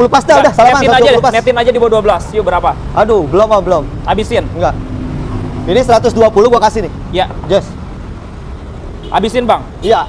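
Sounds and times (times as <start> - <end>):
man speaking: 0.0 - 4.8, 5.6 - 7.8, 9.1 - 10.0.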